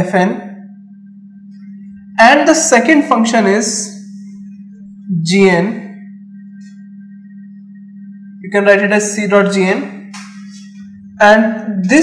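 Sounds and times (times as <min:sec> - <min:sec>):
faint high steady tones: 0:00.0 - 0:12.0
steady low hum: 0:00.0 - 0:12.0.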